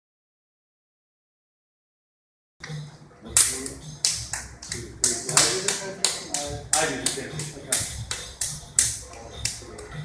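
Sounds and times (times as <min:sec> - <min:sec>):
hands slapping against forearms: 0:03.4 - 0:10.0.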